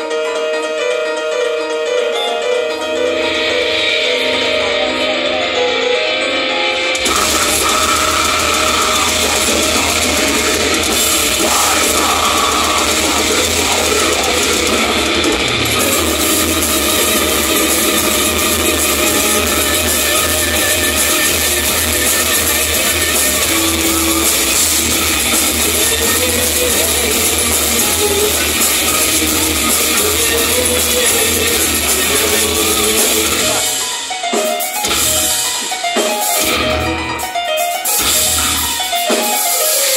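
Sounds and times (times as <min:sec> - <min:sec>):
black metal band playing: 0:00.0 - 0:39.9
keyboard passage: 0:01.6 - 0:39.9.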